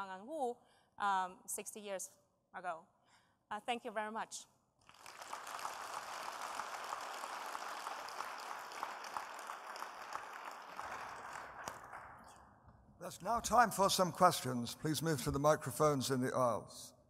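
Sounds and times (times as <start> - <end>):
audience applauding: 4.8 - 12.4.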